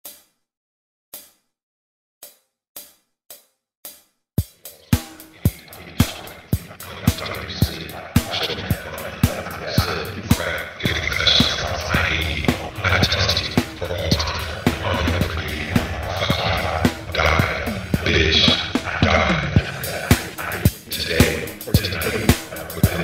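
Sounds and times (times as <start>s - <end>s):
drum machine beat: 2.8s - 23.0s
cymbals: 4.4s - 9.4s
sharp count-in clicks: 4.5s - 23.0s.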